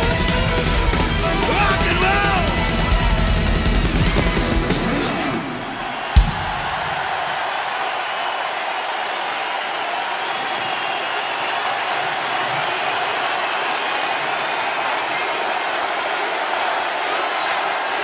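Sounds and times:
crowd cheering and applauding: 0.0s - 18.0s.

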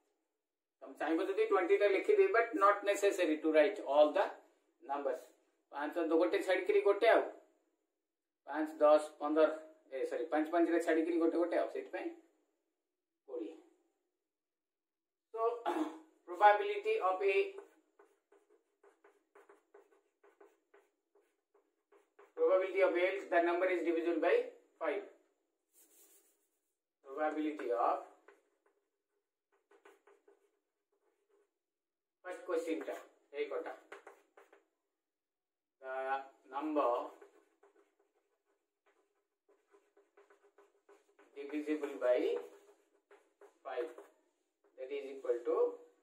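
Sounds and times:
chalk writing on blackboard: 16.3s - 31.7s, 32.3s - 34.8s, 36.1s - 46.0s
man talking: 41.4s - 42.5s.

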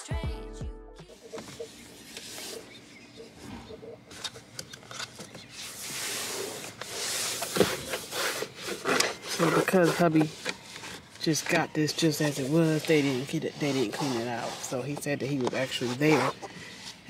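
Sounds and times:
wipe rubbing door panel: 1.4s - 2.8s, 5.4s - 16.4s.

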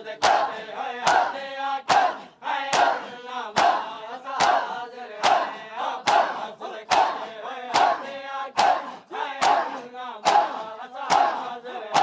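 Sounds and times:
crowd chanting: 0.0s - 12.0s
men slapping chests: 0.2s - 12.0s.

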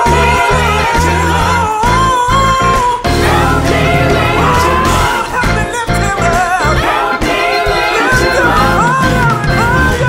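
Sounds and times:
drums: 0.0s - 10.0s
gospel choir singing: 0.0s - 10.0s
organ: 0.0s - 10.0s
piano: 0.0s - 10.0s.

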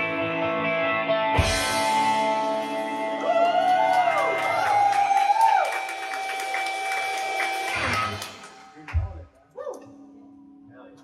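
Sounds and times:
electric guitars ringing chord: 0.0s - 3.3s
crowd whooping and cheering: 2.7s - 8.9s.

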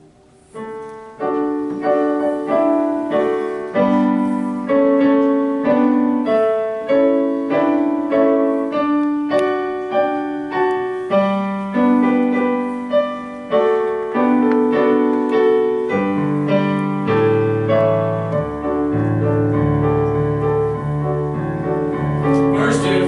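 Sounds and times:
grand piano chords: 0.0s - 23.0s.

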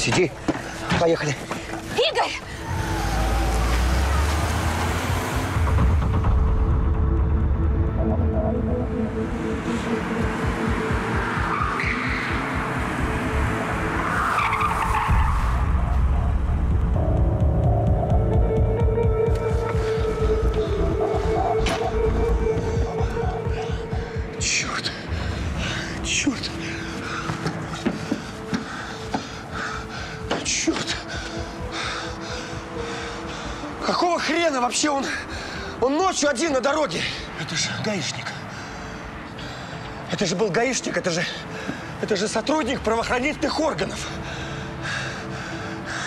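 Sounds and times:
film music score: 0.0s - 46.0s
car engine running hard: 2.6s - 6.2s.

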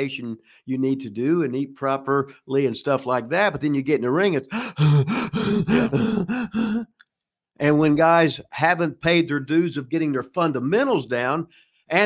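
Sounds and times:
man laughing: 4.8s - 6.9s.

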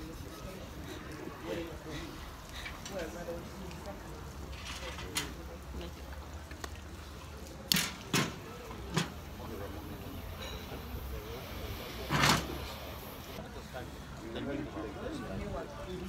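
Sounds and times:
low background chatter: 0.0s - 16.0s
torch lighter hissing bursts: 9.2s - 13.4s.

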